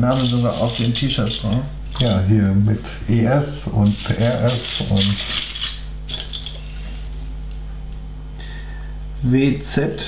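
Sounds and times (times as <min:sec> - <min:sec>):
low steady hum: 0:00.0 - 0:10.0
plastic bricks clattering: 0:00.1 - 0:02.2, 0:03.9 - 0:06.7.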